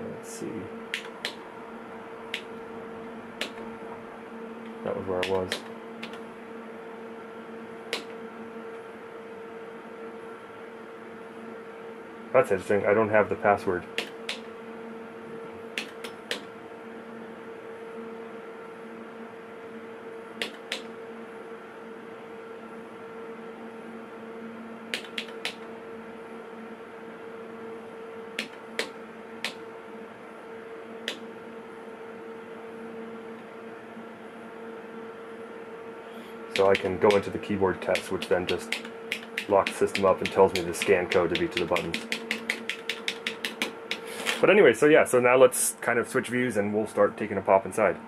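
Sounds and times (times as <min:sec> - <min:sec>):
instrument hum: 0:36.0 - 0:44.6
instrument keys clicking: 0:36.6 - 0:44.1.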